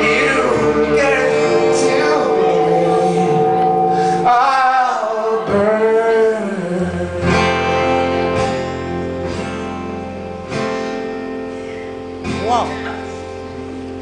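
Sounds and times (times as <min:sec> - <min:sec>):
held bass note: 0:00.0 - 0:06.6
person singing: 0:00.0 - 0:08.3
acoustic guitar strumming: 0:00.0 - 0:14.0.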